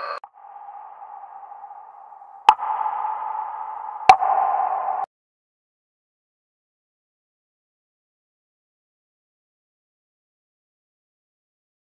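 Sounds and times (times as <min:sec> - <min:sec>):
held ringing tone: 0:00.0 - 0:05.1.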